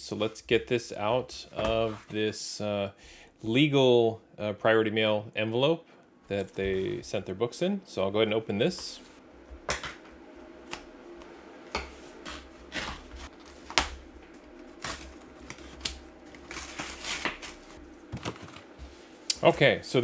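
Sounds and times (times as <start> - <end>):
cardboard envelope rustling and snapping: 12.9 - 18.8.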